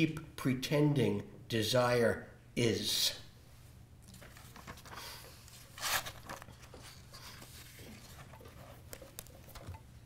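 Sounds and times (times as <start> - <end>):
low room hum: 0.0 - 10.0
paper sheets rustling: 4.1 - 9.6.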